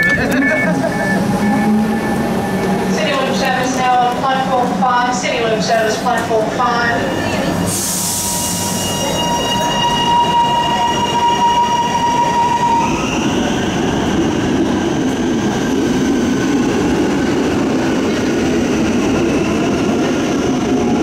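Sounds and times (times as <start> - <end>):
electric train whine: 0.0 - 21.0
train hiss: 7.6 - 9.2.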